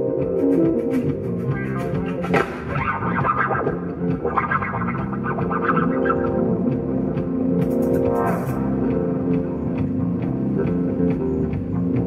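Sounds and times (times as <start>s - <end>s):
bass guitar: 0.0s - 12.0s
keyboards: 0.0s - 12.0s.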